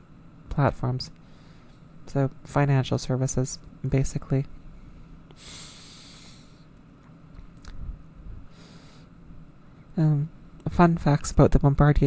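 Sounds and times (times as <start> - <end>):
man inhaling sharply through nose: 5.4 - 6.7.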